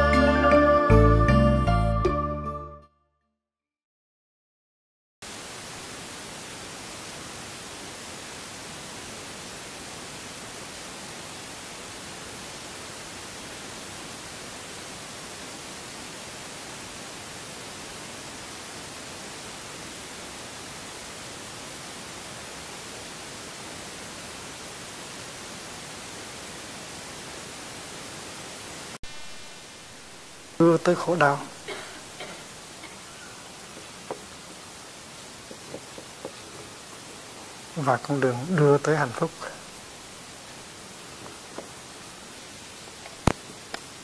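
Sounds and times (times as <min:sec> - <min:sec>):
static hiss: 0:05.2 - 0:44.0.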